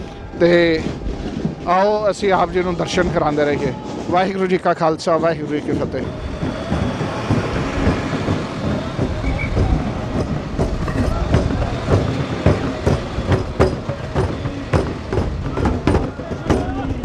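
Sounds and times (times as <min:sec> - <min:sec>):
kettle drums beaten: 0:00.0 - 0:17.0
voices: 0:00.0 - 0:17.0.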